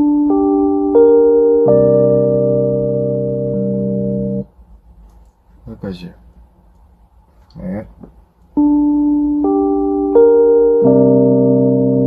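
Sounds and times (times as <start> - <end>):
keyboard chord: 0.0 - 4.5, 8.6 - 12.0.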